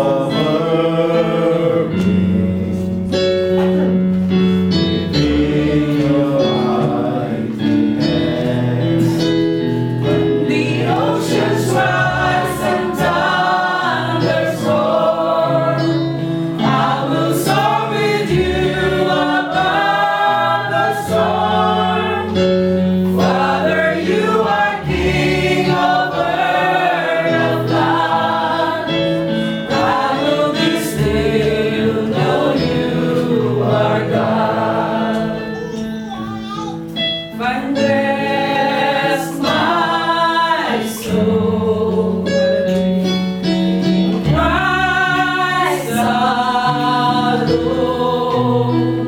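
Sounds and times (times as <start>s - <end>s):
group singing worship song: 0.0s - 36.0s, 37.2s - 49.0s.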